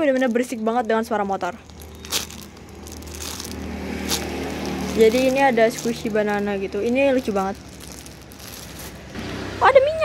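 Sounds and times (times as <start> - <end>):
plastic wrapper crinkling: 0.0 - 9.2
motorbike engine running: 1.9 - 8.4.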